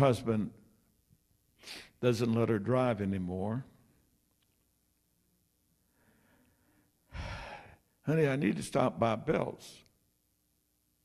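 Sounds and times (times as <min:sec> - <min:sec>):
man breathing into microphone: 0:05.9 - 0:07.8.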